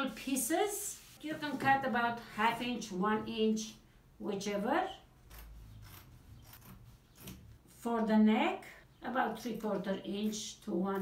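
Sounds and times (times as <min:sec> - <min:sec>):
scissors snipping fabric: 0:05.2 - 0:07.5.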